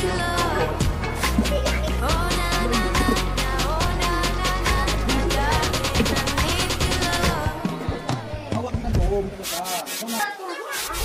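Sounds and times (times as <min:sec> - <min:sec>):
hands rubbing on cardboard: 0:09.4 - 0:11.0.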